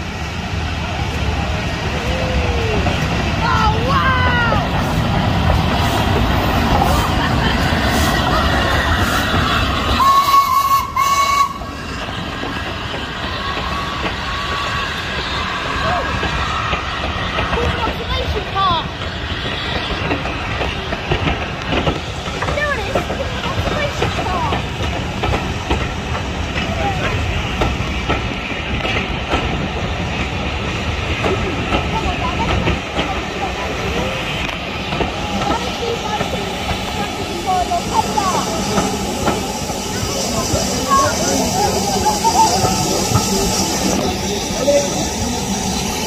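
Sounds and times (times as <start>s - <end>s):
crowd calling and chattering: 0.0s - 46.0s
train coaches rumbling past: 0.0s - 46.0s.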